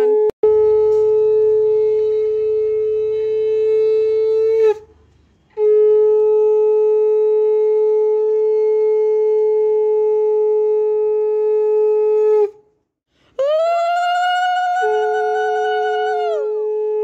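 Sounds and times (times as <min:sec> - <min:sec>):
conch shell blast: 0:00.0 - 0:04.8.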